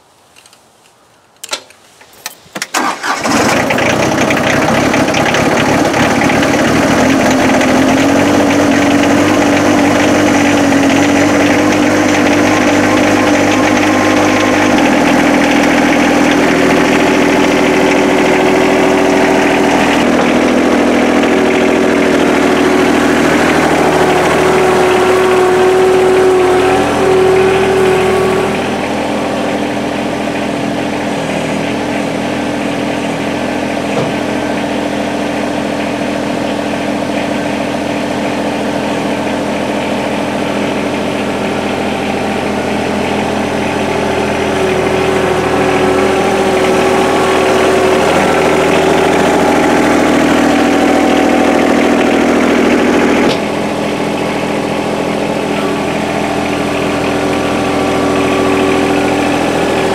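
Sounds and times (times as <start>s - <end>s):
diesel tractor engine cranking: 1.4s - 59.9s
diesel tractor engine running: 1.9s - 59.9s.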